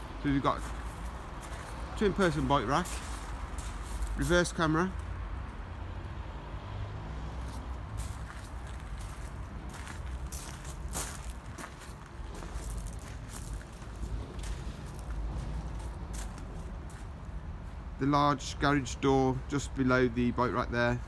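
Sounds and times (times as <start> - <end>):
footsteps crunching on gravel: 0.3 - 4.5, 7.4 - 17.2.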